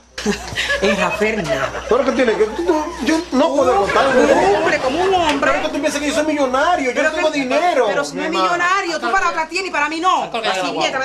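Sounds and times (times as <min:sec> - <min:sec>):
man and woman arguing: 0:00.8 - 0:11.0.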